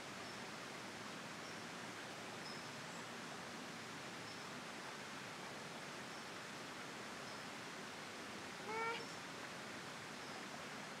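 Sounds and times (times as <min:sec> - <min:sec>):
outdoor background hiss: 0:00.0 - 0:11.0
mewing animal call: 0:08.7 - 0:09.1.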